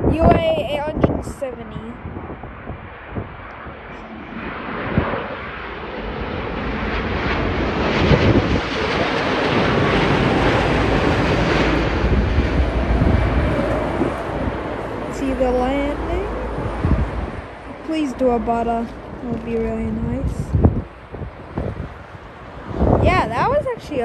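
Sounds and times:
high steady whine: 0:00.0 - 0:24.0
jet engines rumbling: 0:00.0 - 0:24.0.

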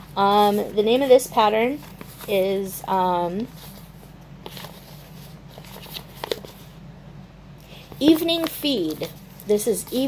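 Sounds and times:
paper rustling: 0:00.0 - 0:06.7, 0:07.9 - 0:10.0
steady low hum: 0:00.0 - 0:10.0.

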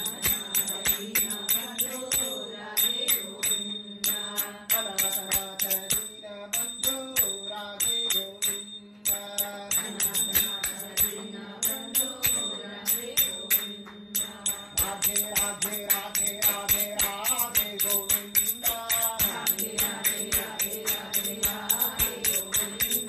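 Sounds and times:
jingling metal percussion: 0:00.0 - 0:23.0.

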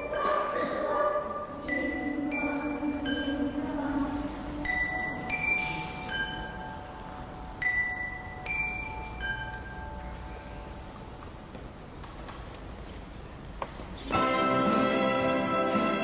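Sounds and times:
chimes playing slow tune: 0:01.6 - 0:11.1.

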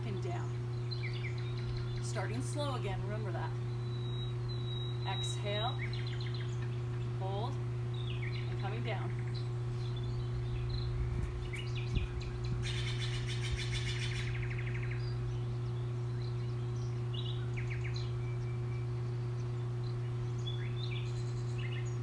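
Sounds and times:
songbirds chirping: 0:00.0 - 0:22.0
steady low hum: 0:00.0 - 0:22.0
rapid bird trill: 0:00.4 - 0:22.0.

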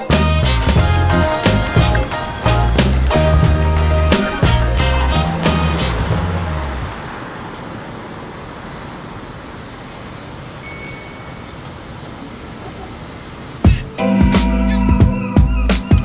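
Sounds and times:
music: 0:00.0 - 0:06.9, 0:13.6 - 0:16.0
street traffic hiss: 0:00.0 - 0:16.0
high bell-like ding: 0:10.6 - 0:11.7.

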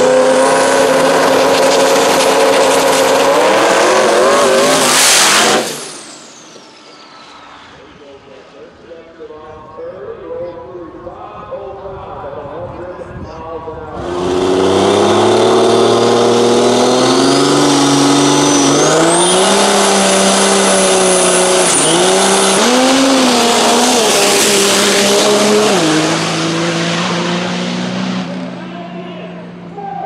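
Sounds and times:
dragster engine revving: 0:00.0 - 0:06.5, 0:13.9 - 0:28.7
turbocharger whistle: 0:00.0 - 0:07.6, 0:14.0 - 0:27.5.

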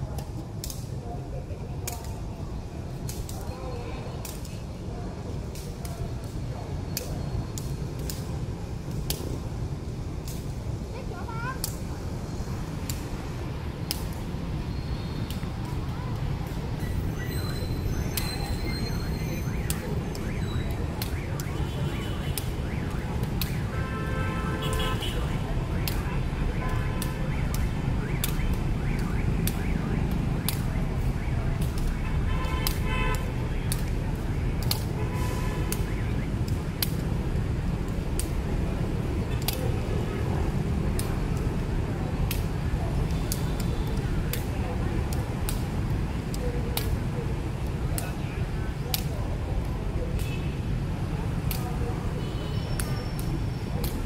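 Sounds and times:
motorbike traffic rumble: 0:00.0 - 0:54.0.

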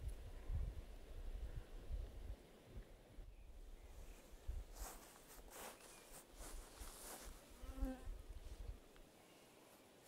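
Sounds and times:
footsteps through grass: 0:04.0 - 0:07.8
flying insect buzz: 0:07.5 - 0:08.2.

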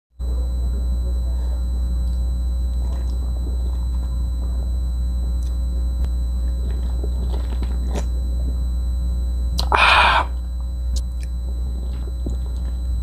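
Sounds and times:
low electrical hum: 0:00.1 - 0:13.0
drinking beer from a can: 0:09.6 - 0:10.4.

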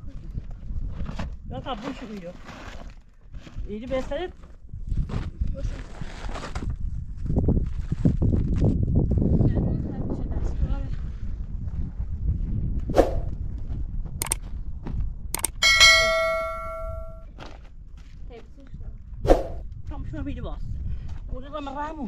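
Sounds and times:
loud ringing metal clang: 0:15.4 - 0:17.2.

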